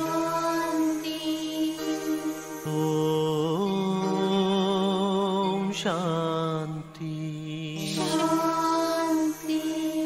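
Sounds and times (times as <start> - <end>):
devotional chanting: 0.0 - 10.0.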